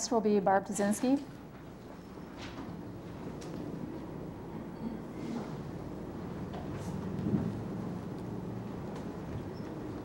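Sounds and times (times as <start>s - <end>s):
faint electrical hum: 0.0s - 10.0s
low room rumble: 0.0s - 10.0s.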